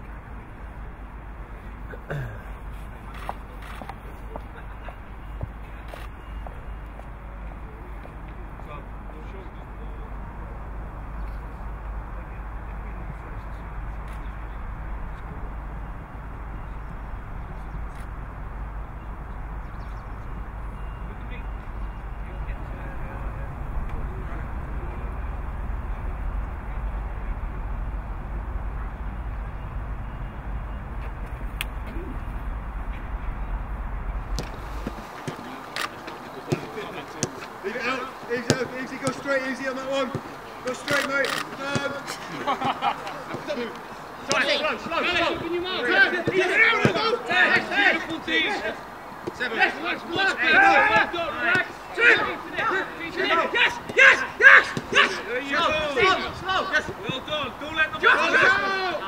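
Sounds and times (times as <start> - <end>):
people talking: 1.9 - 18.1, 20.2 - 59.0
deep low rumble: 10.5 - 35.2
people calling out: 31.6 - 32.5, 34.4 - 59.0.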